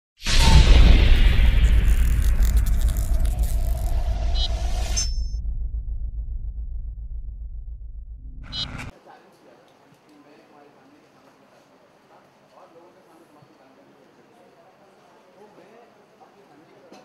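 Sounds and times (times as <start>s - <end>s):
shimmering whoosh: 0.2s - 5.4s
deep boom with low rumble: 0.3s - 8.9s.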